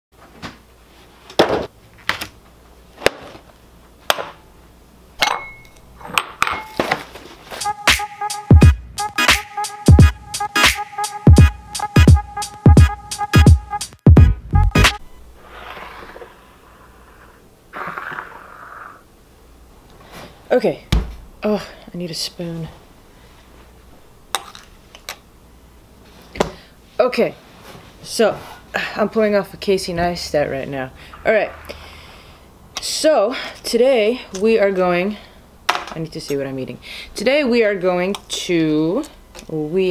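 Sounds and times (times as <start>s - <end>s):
glass bowl clinking on countertop: 5.2s - 6.8s
music with a beat: 7.6s - 15.0s.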